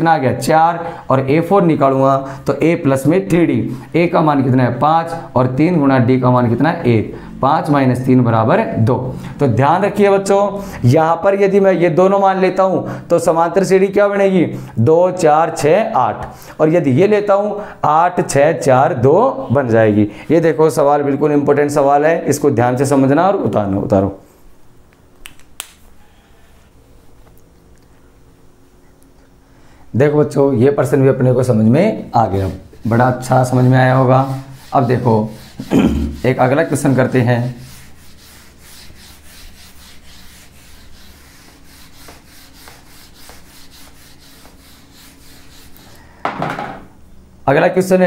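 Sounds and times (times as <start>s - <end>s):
short sharp clicks: 25.2s - 25.9s
duster wiping a whiteboard: 30.3s - 46.7s.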